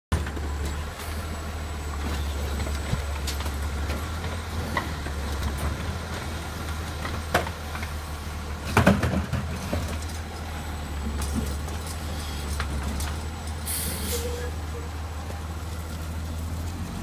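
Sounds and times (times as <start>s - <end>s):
garbage truck diesel engine droning: 0.1s - 17.0s
cart knocks: 8.7s - 10.0s.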